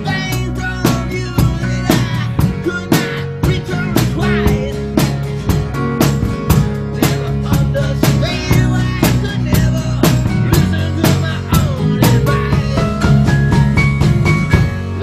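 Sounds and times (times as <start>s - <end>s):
man singing: 0.0s - 5.7s, 6.3s - 15.0s
drum kit steady beat: 0.0s - 15.0s
electric guitar: 0.0s - 15.0s
strummed acoustic guitar: 0.0s - 15.0s.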